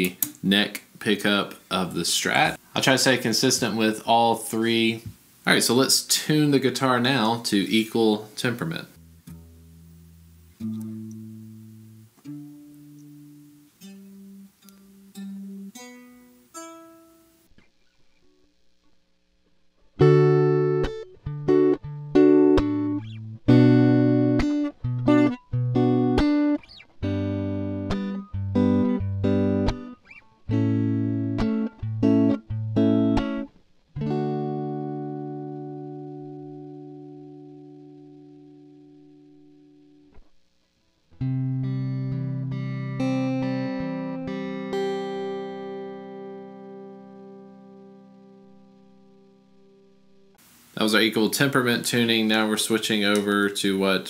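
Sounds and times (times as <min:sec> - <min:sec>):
electric guitar chords and notes: 0:08.9 - 0:17.7, 0:20.0 - 0:40.4, 0:41.1 - 0:50.4.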